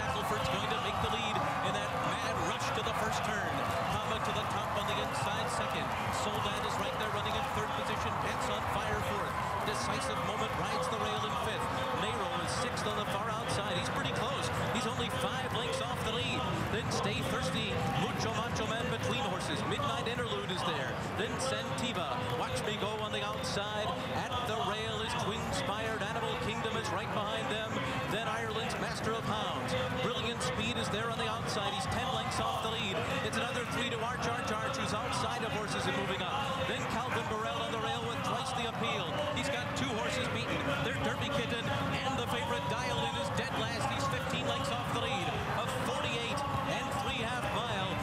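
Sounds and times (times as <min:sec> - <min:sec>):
race crowd noise: 0:00.0 - 0:48.0.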